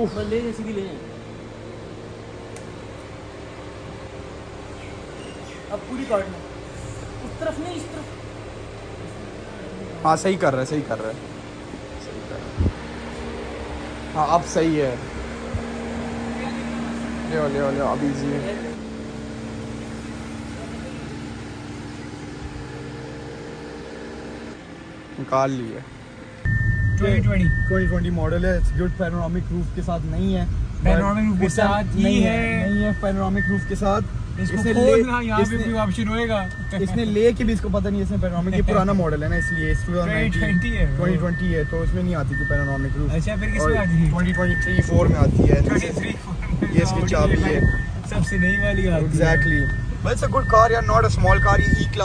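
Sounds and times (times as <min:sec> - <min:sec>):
car engine idling: 0:00.0 - 0:52.0.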